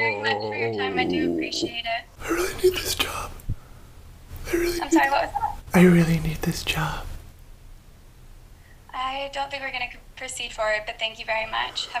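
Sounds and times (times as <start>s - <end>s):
man speaking: 2.2s - 3.3s, 4.4s - 7.1s.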